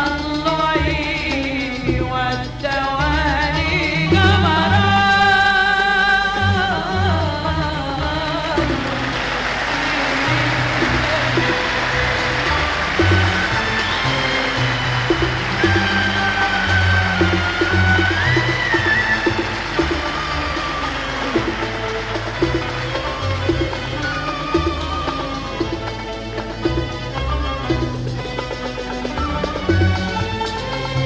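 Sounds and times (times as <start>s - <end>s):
audience applauding and cheering: 8.0s - 31.0s
orchestra playing: 8.0s - 31.0s.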